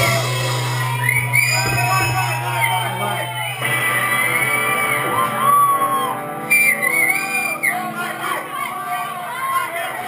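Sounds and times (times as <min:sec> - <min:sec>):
rock band playing live: 0:00.0 - 0:10.0
shouting voices: 0:00.0 - 0:10.0.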